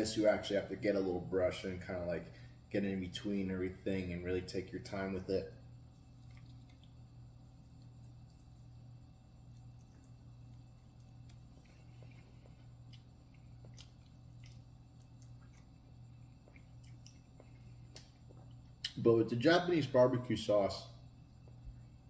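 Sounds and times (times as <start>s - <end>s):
steady low hum: 0.0s - 22.0s
person chewing wetly: 5.8s - 19.0s.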